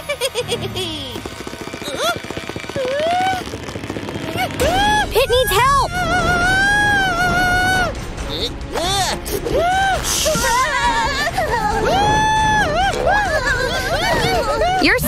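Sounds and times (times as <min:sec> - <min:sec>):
background music: 0:00.0 - 0:15.0.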